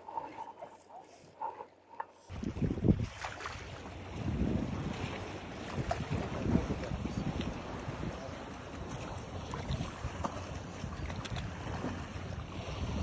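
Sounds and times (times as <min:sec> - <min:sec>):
wind buffeting microphone: 0:02.3 - 0:13.0.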